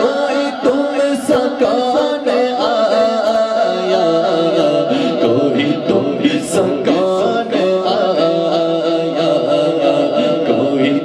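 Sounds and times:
men singing unaccompanied: 0.0s - 11.0s.

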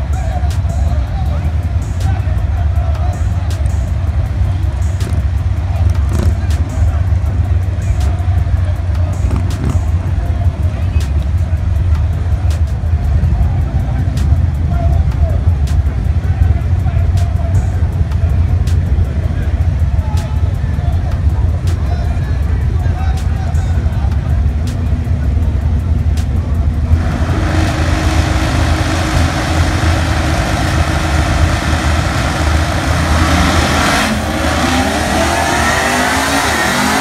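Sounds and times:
music: 0.0s - 37.0s
race cars idling: 0.0s - 37.0s
voices: 0.0s - 37.0s.

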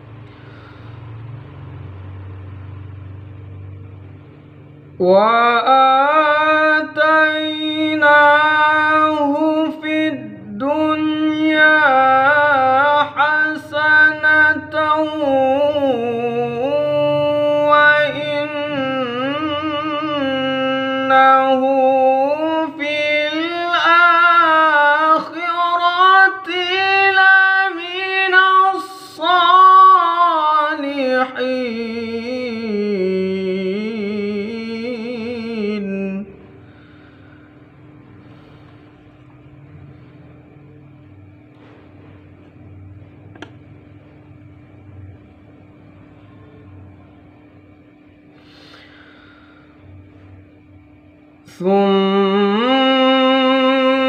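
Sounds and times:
low motor-like rumbling hum: 0.0s - 54.0s
man reciting melodically: 4.8s - 36.7s.

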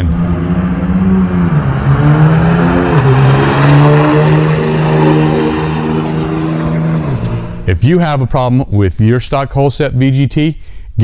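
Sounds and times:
diesel engine at full throttle: 0.0s - 7.7s.

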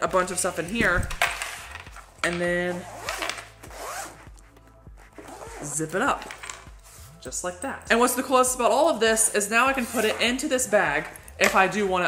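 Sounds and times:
zipper being pulled shut: 2.6s - 7.2s, 9.8s - 10.4s.

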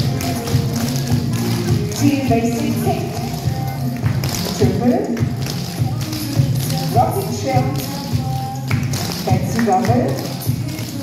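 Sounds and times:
pop music with steady beat: 0.0s - 11.0s
tap shoes on wooden stage: 0.0s - 11.0s.

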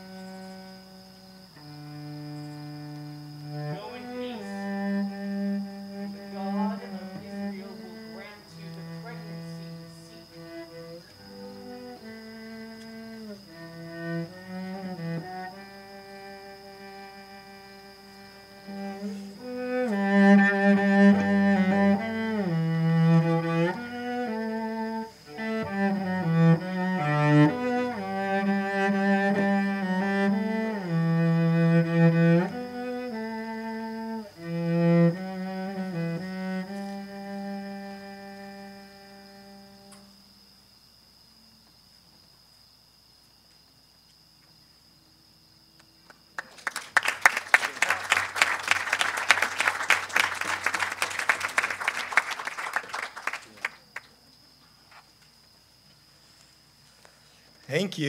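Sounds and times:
cello slow bowed melody: 0.0s - 40.2s.

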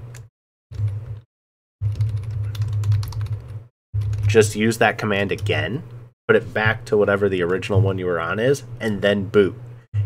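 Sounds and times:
steady low hum: 1.8s - 10.0s
typing on computer keyboard: 1.9s - 4.3s.

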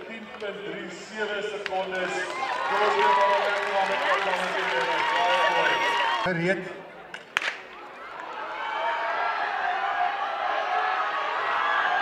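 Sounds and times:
crowd cheering and shouting: 1.7s - 6.4s, 7.7s - 12.0s.

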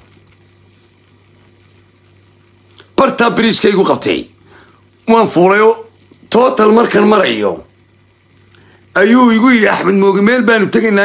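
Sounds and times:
low hum with light hiss: 0.0s - 11.0s.

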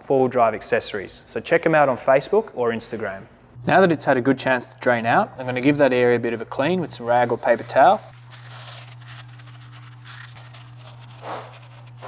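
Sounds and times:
steady low hum: 2.2s - 12.0s
hand rubbing oily metal: 6.5s - 12.0s.

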